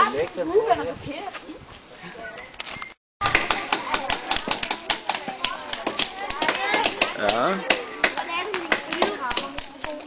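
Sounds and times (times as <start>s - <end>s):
voices: 3.2s - 10.0s.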